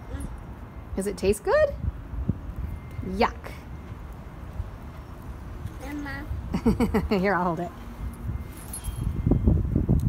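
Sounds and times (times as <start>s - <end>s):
wind on microphone: 1.5s - 3.2s, 7.9s - 10.0s
faint high ringing: 2.5s - 6.0s, 7.7s - 9.8s.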